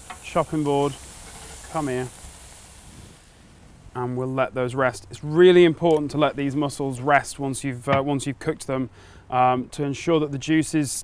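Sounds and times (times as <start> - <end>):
steaks sizzling on grill: 0.0 - 4.2.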